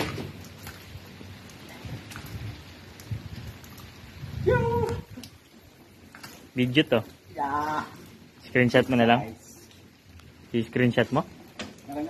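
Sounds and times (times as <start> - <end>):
man shouting: 4.4 - 5.2, 7.3 - 8.0.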